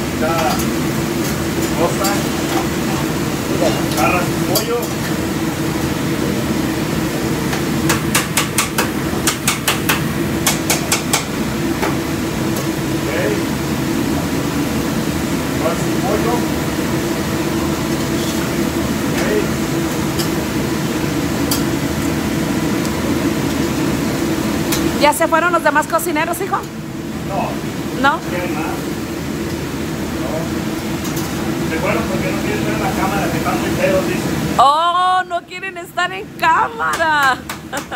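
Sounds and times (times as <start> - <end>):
ventilation fan drone: 0.0 - 37.9
metal utensil knocking on griddle: 7.9 - 11.3.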